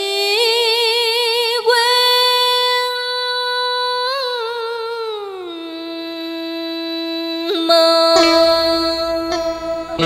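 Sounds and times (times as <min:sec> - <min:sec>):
woman singing a long note: 0:01.4 - 0:10.0.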